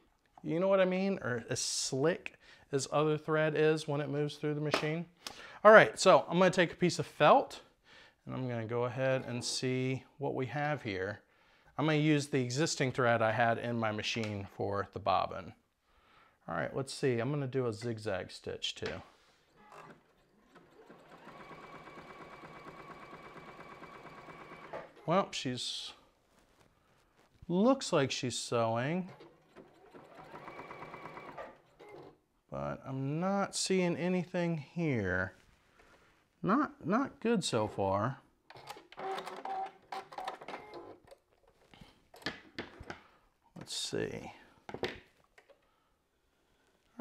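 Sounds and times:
sewing machine stitching: 0:19.5 - 0:25.1, 0:28.9 - 0:32.2, 0:38.5 - 0:41.2.

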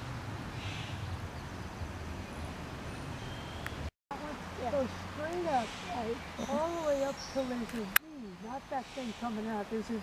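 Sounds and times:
faint hiss: 0:04.6 - 0:10.0.

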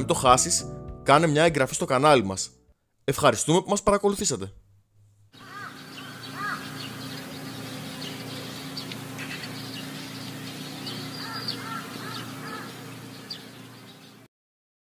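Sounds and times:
birds chirping: 0:05.4 - 0:14.3
steady low hum: 0:05.5 - 0:14.2.

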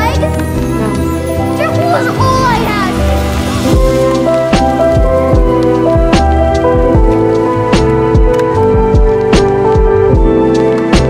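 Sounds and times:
keyboard chords: 0:00.0 - 0:11.0
soft drum beat: 0:03.8 - 0:10.4.

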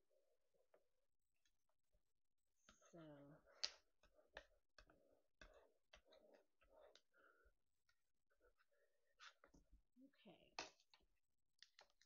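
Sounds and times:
faint clicks and taps: 0:10.5 - 0:12.0.

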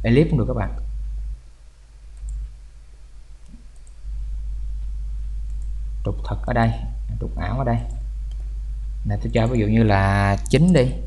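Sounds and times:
low electrical hum: 0:00.0 - 0:11.0
computer mouse clicks: 0:02.2 - 0:02.5, 0:03.4 - 0:04.0.

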